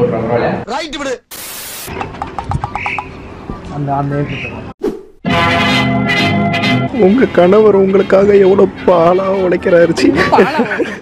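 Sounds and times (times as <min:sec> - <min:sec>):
rapid rattling croak: 0:02.0 - 0:03.2.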